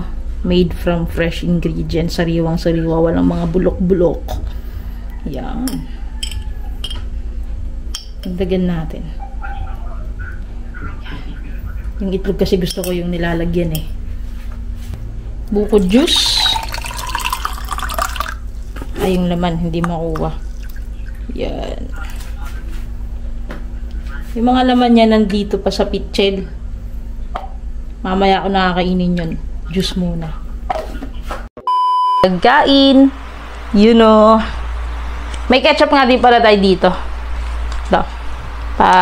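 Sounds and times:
steady low hum: 0.0 - 39.0
spoon clinking against dishware: 5.7 - 7.0, 7.9 - 8.4.

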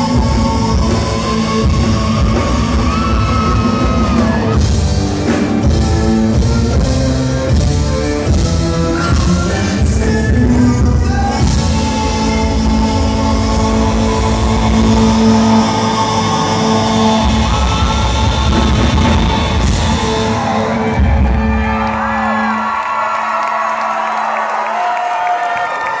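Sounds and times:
crowd voices wavering: 0.0 - 6.7
heavy bass and drum beat: 0.0 - 22.4
live rock band playing: 0.0 - 22.8.

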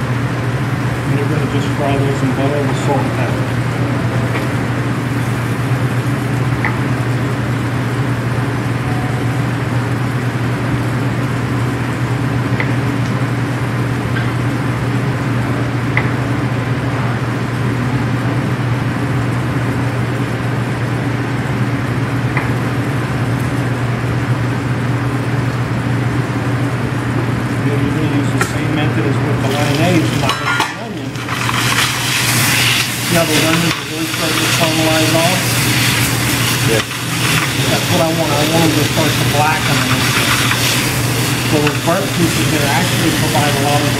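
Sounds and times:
food sizzling in frying pan: 3.0 - 15.0, 29.3 - 43.9
low hum: 7.2 - 12.0.

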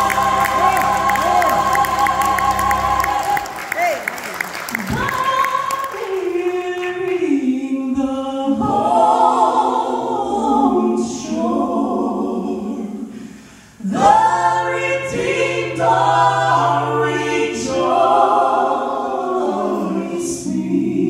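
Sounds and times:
vocal trio singing in harmony: 0.0 - 4.1, 4.8 - 21.0.

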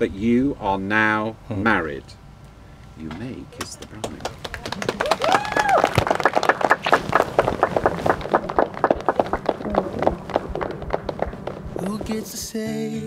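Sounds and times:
guests applauding: 3.6 - 12.1
person cheering woo: 5.0 - 6.0.

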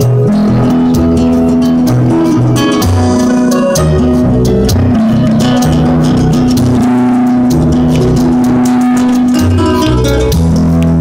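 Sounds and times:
street guitar playing: 0.0 - 11.0.

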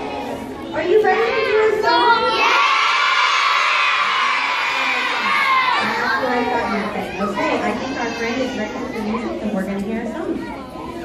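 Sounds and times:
children shouting and cheering: 0.0 - 9.4
children chattering: 0.0 - 11.0.

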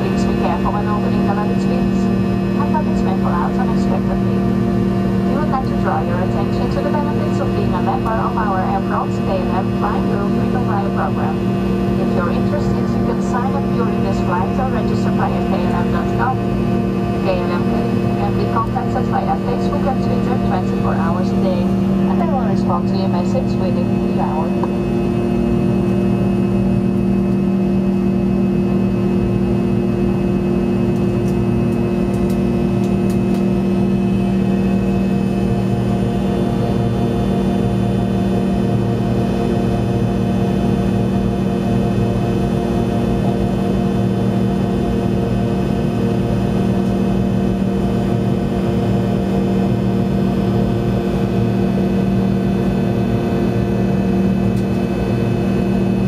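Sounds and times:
jet engine hum: 0.0 - 56.0.

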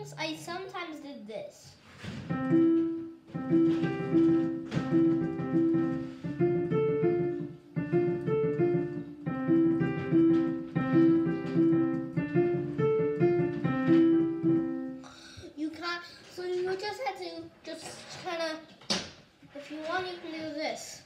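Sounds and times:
digital piano arpeggios: 2.3 - 15.2.

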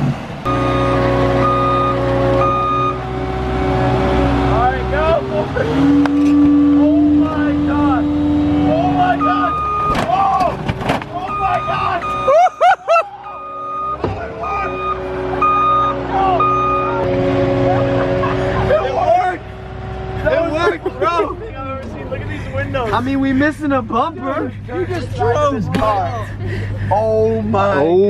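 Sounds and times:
car engine revving hard: 0.0 - 9.6, 14.1 - 23.1
short beeps: 0.5 - 3.0, 9.2 - 10.0, 11.2 - 12.4, 13.3 - 17.0
people shouting: 8.6 - 13.5, 14.2 - 19.4.

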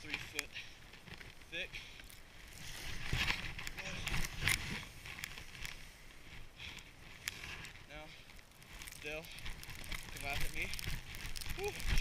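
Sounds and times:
skis swishing through powder snow: 2.4 - 6.4, 10.0 - 12.0.

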